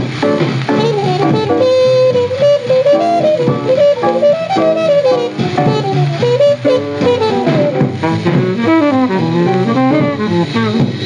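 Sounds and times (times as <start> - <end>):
bass: 0.0 - 11.0
fast saxophone line: 0.0 - 11.0
guitar: 0.0 - 11.0
jazz drums: 0.0 - 11.0.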